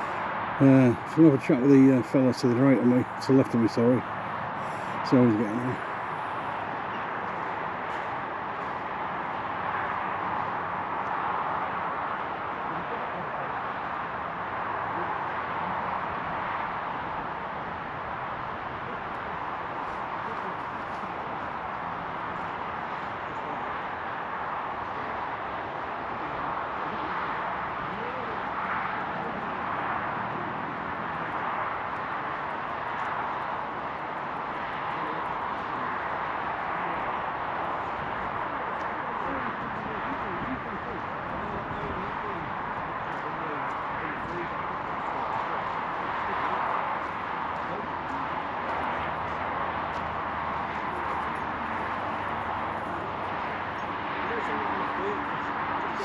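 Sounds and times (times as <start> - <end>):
faint distant conversation: 0.0 - 4.0, 4.9 - 8.1, 12.0 - 16.8, 18.6 - 31.8, 34.3 - 56.0
even outdoor hiss: 0.0 - 16.7.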